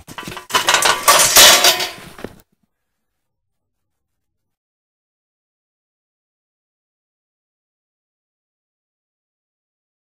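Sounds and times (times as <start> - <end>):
wire cage rattling and clinking: 0.0 - 2.2.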